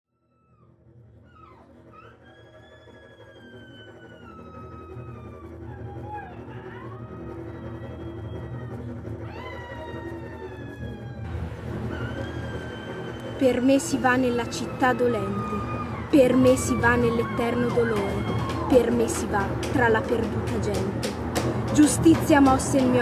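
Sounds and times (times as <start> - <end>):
gliding wail-like tones: 0.2 - 23.0.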